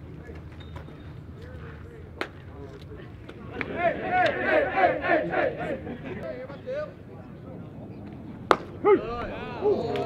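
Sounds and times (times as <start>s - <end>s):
voices shouting: 3.5s - 6.0s, 8.8s - 10.0s.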